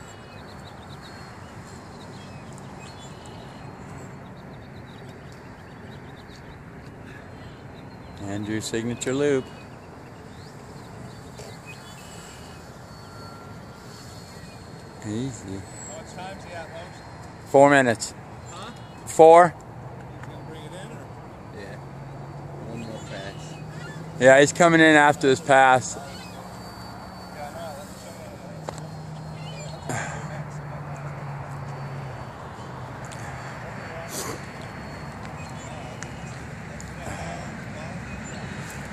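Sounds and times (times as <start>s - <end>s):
constant rushing noise: 0.0s - 38.9s
faint high whine: 8.2s - 19.1s, 20.2s - 38.2s.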